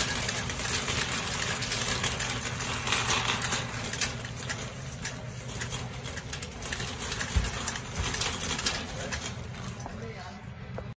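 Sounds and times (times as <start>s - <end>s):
wire basket rattling: 0.0s - 10.0s
shopping cart wheels rumbling: 0.0s - 10.5s.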